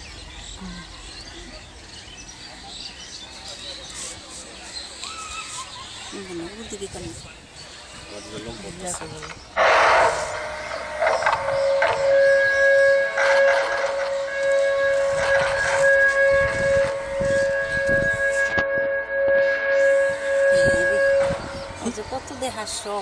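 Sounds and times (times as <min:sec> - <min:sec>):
high-pitched siren-like whine: 0:09.6 - 0:23.0.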